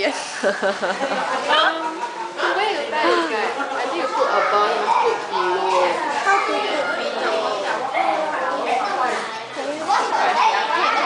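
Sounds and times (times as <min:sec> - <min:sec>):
women chattering: 0:00.0 - 0:11.0.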